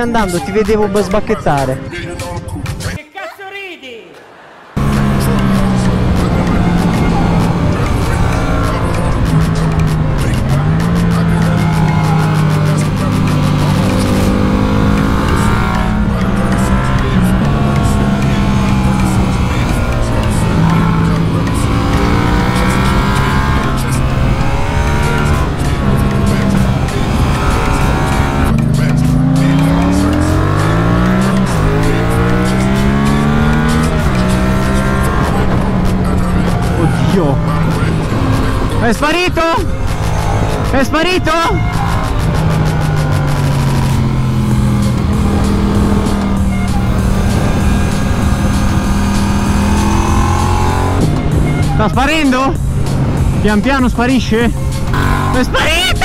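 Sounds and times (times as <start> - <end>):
motorcycle engine: 4.6 - 56.0.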